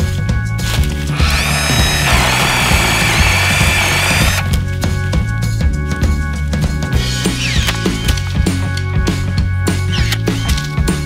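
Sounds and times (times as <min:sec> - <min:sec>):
background music: 0:00.0 - 0:11.0
electric chainsaw cutting: 0:00.8 - 0:04.6.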